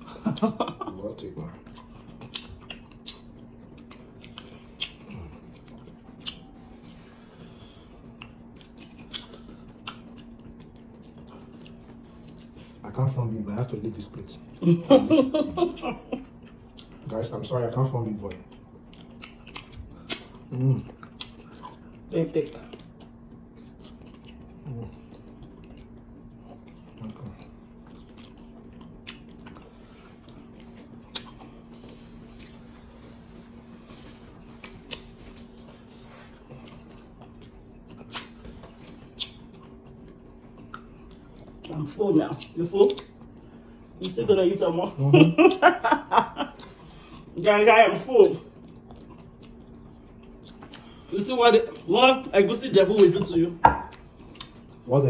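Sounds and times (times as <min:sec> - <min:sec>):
faint steady low hum: 0:00.0 - 0:55.0
wet chewing: 0:01.5 - 0:12.9, 0:16.2 - 0:17.1, 0:18.2 - 0:44.3, 0:48.2 - 0:51.9, 0:52.8 - 0:54.9.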